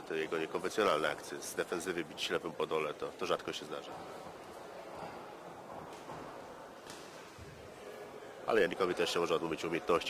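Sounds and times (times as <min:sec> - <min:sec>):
sports hall murmur: 0:00.0 - 0:10.0.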